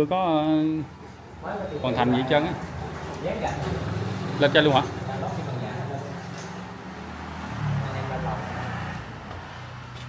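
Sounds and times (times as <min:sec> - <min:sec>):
road traffic engine hum: 0:00.0 - 0:10.0.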